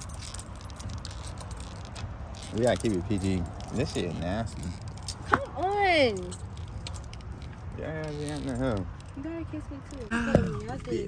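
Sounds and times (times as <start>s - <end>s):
keys jangling: 0.0s - 10.0s.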